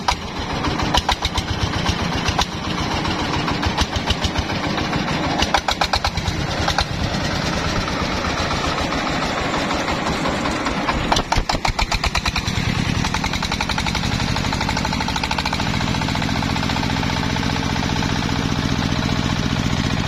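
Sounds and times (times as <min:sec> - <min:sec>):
diesel engine chugging: 0:00.0 - 0:20.0.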